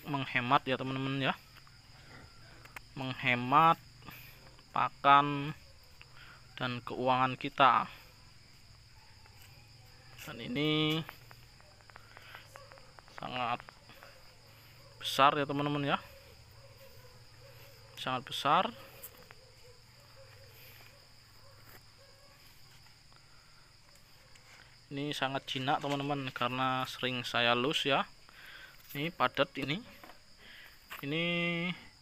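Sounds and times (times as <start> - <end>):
high-pitched insect chirring: 0.1 - 29.5.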